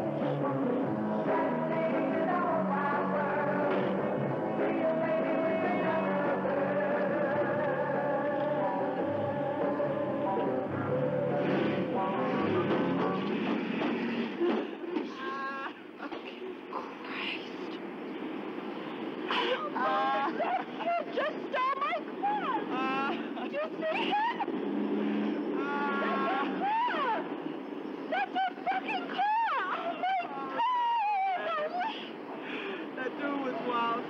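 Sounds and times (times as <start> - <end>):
low steady drone: 0.0 - 14.5
street traffic hum: 0.0 - 34.0
women laughing: 14.2 - 16.7, 19.3 - 24.6, 25.6 - 27.2, 28.1 - 32.2
women talking excitedly: 19.7 - 24.4, 25.6 - 27.3, 28.1 - 32.2.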